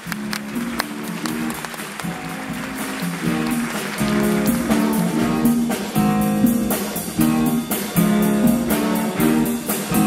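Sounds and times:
big band playing soul jazz: 0:00.0 - 0:10.0
guitar: 0:00.0 - 0:10.0.

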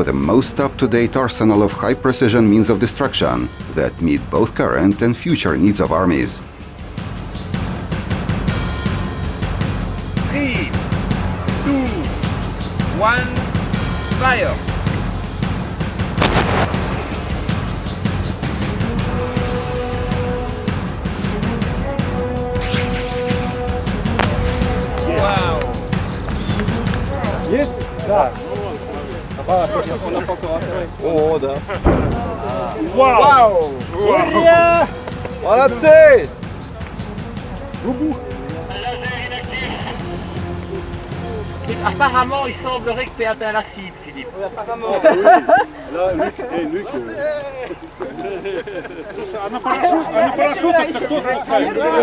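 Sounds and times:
background music: 0:00.0 - 0:52.0
gun firing report: 0:16.2 - 0:17.3, 0:24.1 - 0:25.4, 0:31.8 - 0:32.4.

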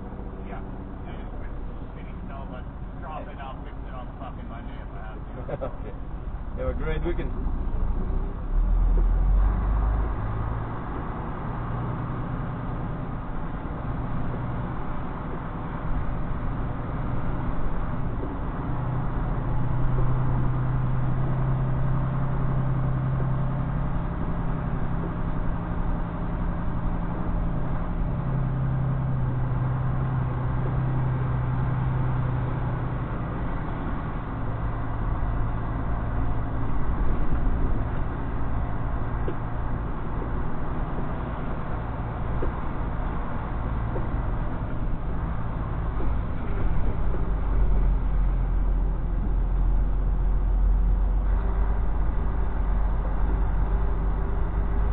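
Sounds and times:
truck diesel engine droning: 0:00.0 - 0:54.9.

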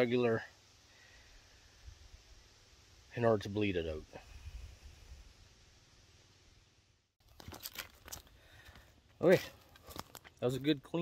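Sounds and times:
man speaking: 0:00.0 - 0:00.5, 0:03.1 - 0:04.2, 0:09.2 - 0:09.6, 0:10.4 - 0:11.0
footsteps on forest ground: 0:07.2 - 0:10.8.

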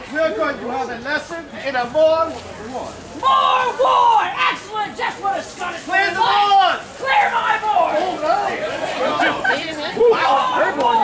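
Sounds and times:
crowd chatter: 0:00.0 - 0:11.0
people talking and calling out: 0:00.0 - 0:11.0.

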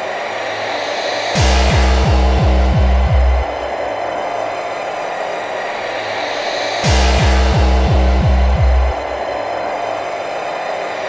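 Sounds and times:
harsh distorted noise: 0:00.0 - 0:04.4, 0:05.8 - 0:09.7
distorted kick drums: 0:01.4 - 0:03.9, 0:06.8 - 0:09.3.

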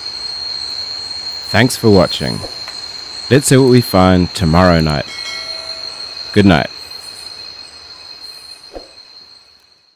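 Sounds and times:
high-pitched insect drone: 0:00.0 - 0:09.9.

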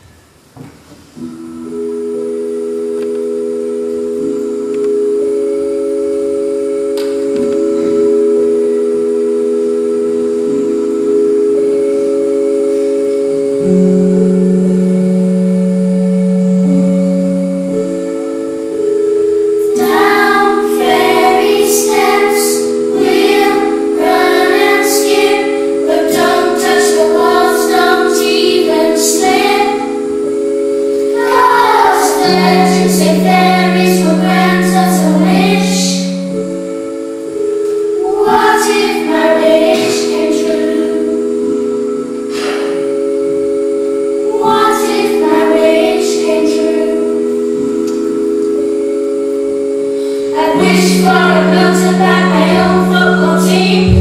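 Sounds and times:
electronic keyboard chords: 0:00.0 - 0:54.0
bright quick melody: 0:53.8 - 0:54.0.

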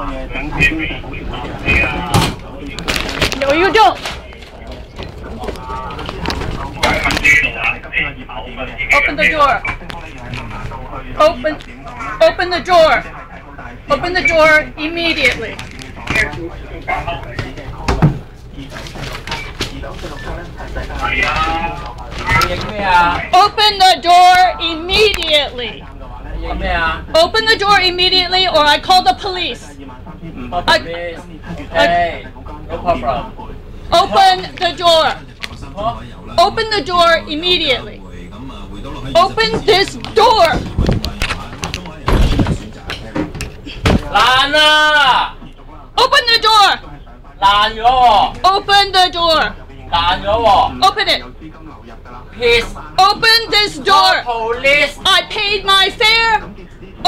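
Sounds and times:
engine low rumble: 0:00.0 - 0:23.4, 0:24.6 - 0:42.9
voices: 0:00.0 - 0:57.0.

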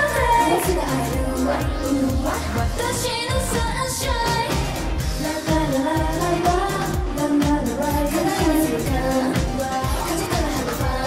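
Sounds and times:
dance beat: 0:00.0 - 0:11.0
female voices singing pop song: 0:00.0 - 0:11.0.

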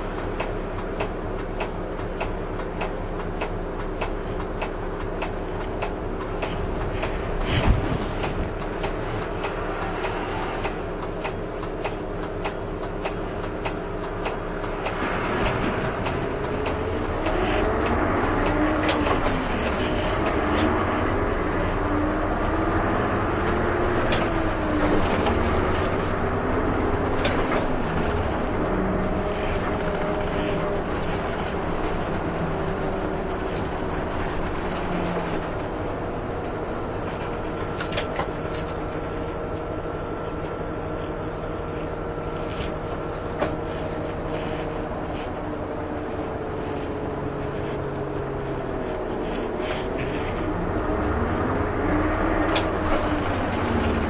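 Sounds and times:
bus engine drone: 0:00.0 - 0:54.0.

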